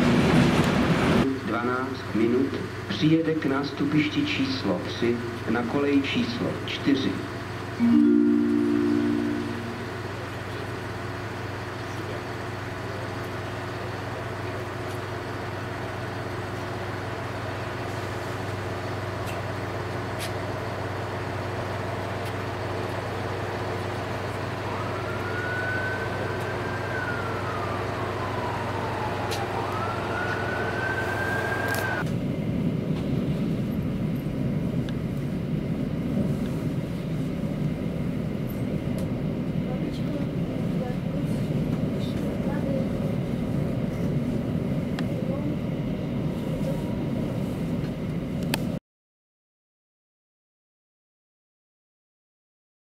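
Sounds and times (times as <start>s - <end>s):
electric locomotive hum and whine: 0.0s - 48.8s
moving passenger train rumble: 0.0s - 48.8s.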